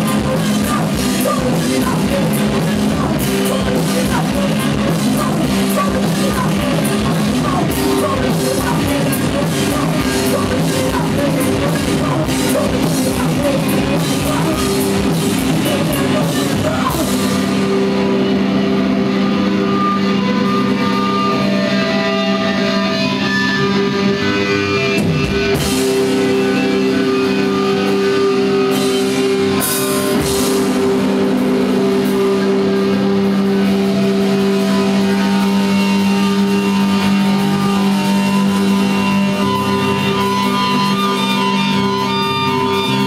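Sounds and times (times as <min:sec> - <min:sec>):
distorted electric guitars droning chord: 0:00.0 - 0:43.0.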